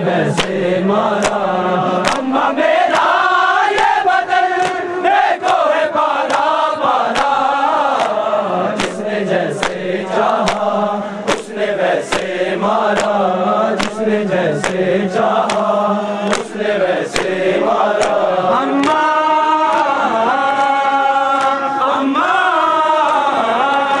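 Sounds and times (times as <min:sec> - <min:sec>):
men chanting in unison: 0:00.0 - 0:24.0
hand slapping chest: 0:00.3 - 0:01.4, 0:02.0 - 0:02.3, 0:02.9 - 0:04.0, 0:04.6 - 0:04.8, 0:05.4 - 0:06.5, 0:07.1 - 0:13.2, 0:13.8 - 0:19.0.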